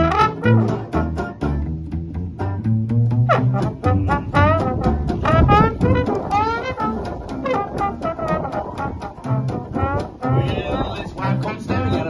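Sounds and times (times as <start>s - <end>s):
banjo strumming: 0.0s - 12.0s
double bass line: 0.0s - 12.0s
trombone and clarinet melody: 0.0s - 12.0s.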